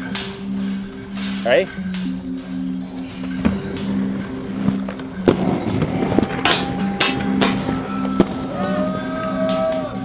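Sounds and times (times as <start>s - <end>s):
music with low bass line: 0.0s - 10.0s
skate wheels rolling on concrete: 2.8s - 10.0s
skates clacking on ground: 3.1s - 10.0s.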